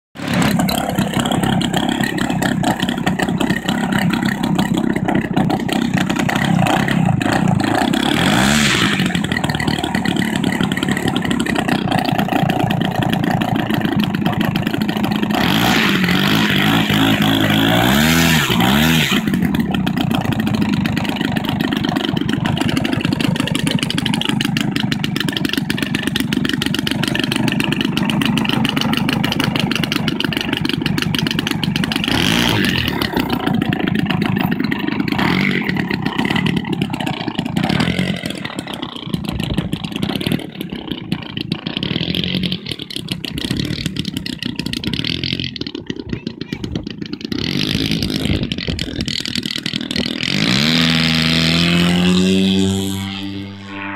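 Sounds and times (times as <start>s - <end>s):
model aeroplane engine revving: 0.2s - 53.9s.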